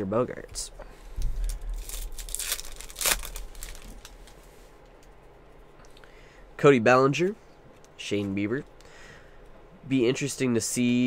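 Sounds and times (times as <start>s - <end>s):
foil wrapper tearing and crinkling: 1.4s - 4.4s.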